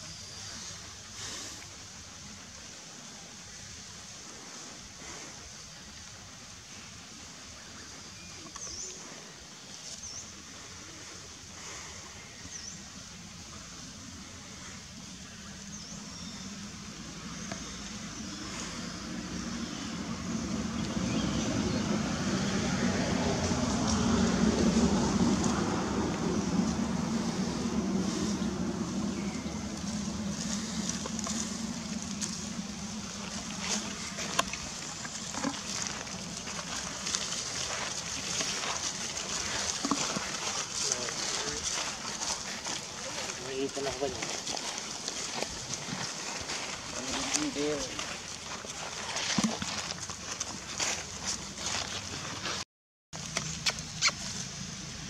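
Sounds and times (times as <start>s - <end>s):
motor vehicle passing: 16.5s - 48.8s.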